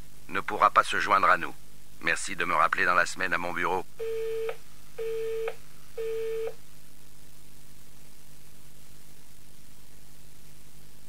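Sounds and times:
telephone busy tone beeps: 4.0s - 6.6s.

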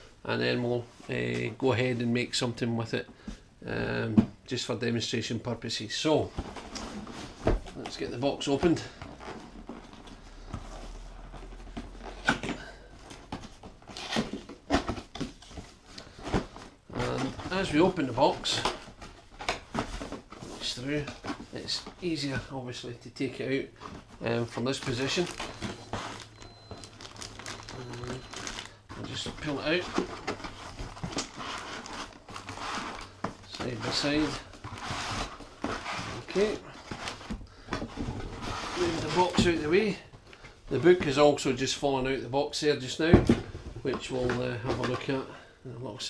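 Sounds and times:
cardboard scraping and rustling: 6.2s - 22.5s, 23.8s - 40.0s.

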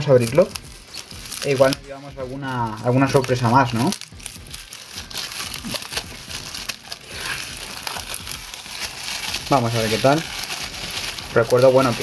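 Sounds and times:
plastic shrink wrap crinkling: 0.0s - 12.0s.

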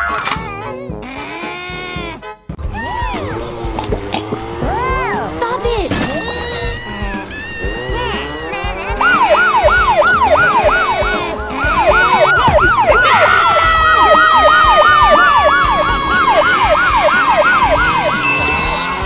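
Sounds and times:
police siren yelp: 9.0s - 19.0s
long steady siren tone: 9.1s - 18.2s.

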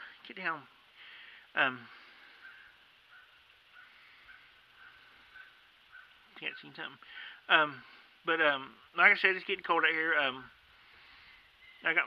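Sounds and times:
faint high chirps: 1.6s - 6.9s, 10.5s - 12.0s.

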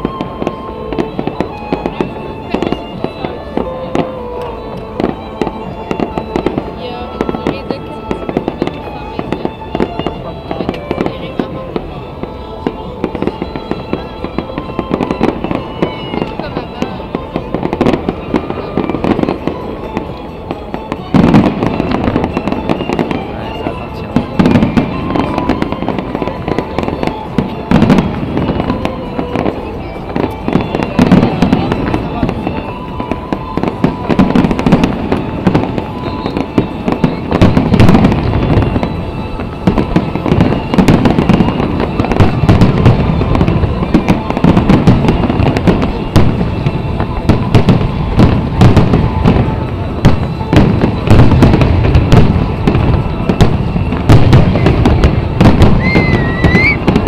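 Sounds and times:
fireworks exploding and crackling: 0.0s - 57.0s
music: 0.0s - 57.0s.

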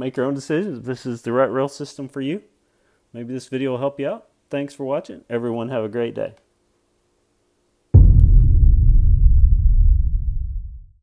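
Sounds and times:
deep rumbling boom: 8.0s - 11.0s.

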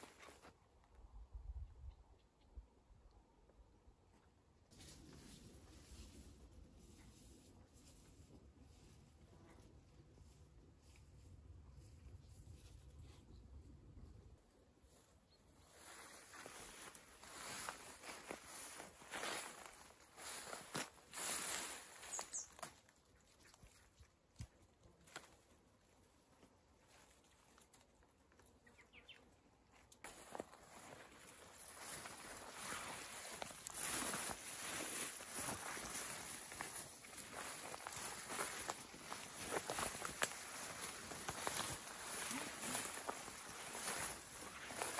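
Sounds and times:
rustling of leaves and branches: 0.0s - 0.6s, 4.7s - 44.9s
footsteps on dry leaves: 15.7s - 22.9s, 30.0s - 44.9s.

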